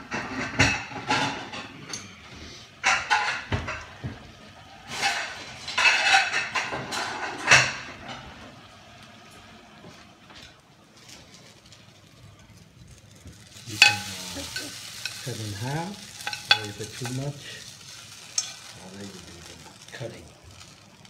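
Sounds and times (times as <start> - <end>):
dishes and cookware clattering: 0.0 - 2.2, 2.8 - 8.4, 13.2 - 18.8.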